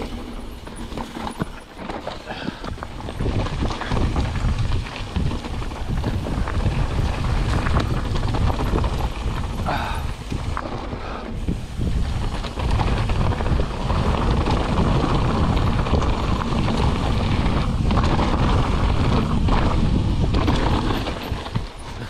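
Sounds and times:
bike clicks and rattles: 0.0 - 22.0
tyres rolling on dirt and rock: 0.0 - 22.0
wind buffeting microphone: 0.0 - 22.0.

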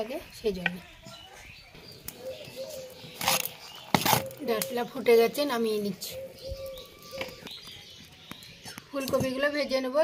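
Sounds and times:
dove cooing: 2.1 - 5.0, 5.9 - 7.5.

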